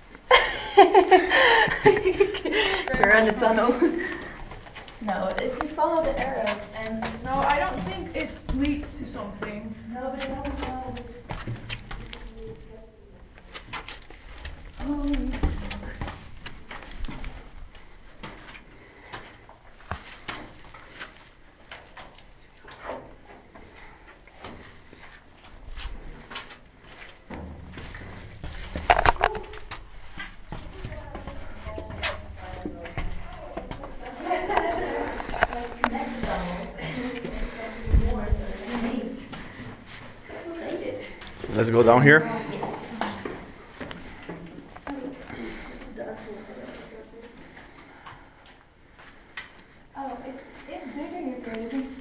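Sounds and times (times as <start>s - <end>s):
footsteps: 0.0s - 52.0s
indistinct voices: 27.8s - 48.6s.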